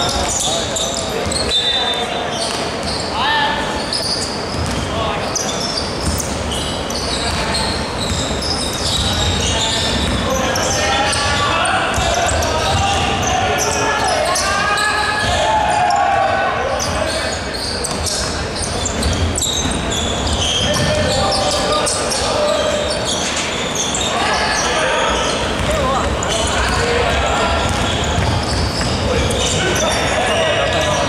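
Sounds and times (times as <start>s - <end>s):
players calling out: 0.0s - 31.0s
basketball bouncing on hardwood court: 4.5s - 4.8s, 7.3s - 10.3s, 17.9s - 21.2s, 25.5s - 26.9s, 27.6s - 29.6s.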